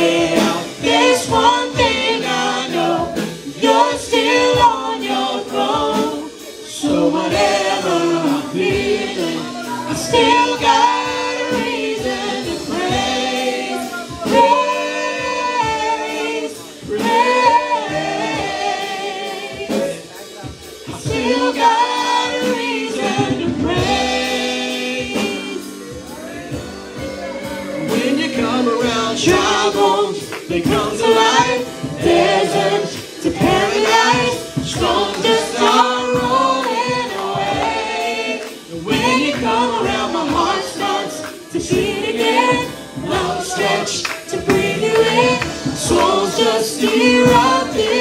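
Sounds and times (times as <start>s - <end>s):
keyboard accompaniment: 0.0s - 48.0s
other voices singing: 0.0s - 48.0s
woman and man singing: 0.0s - 48.0s.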